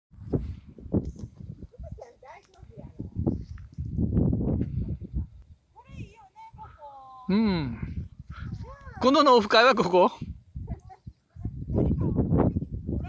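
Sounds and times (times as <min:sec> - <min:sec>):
rumbling and bumps on microphone: 0:00.2 - 0:05.4.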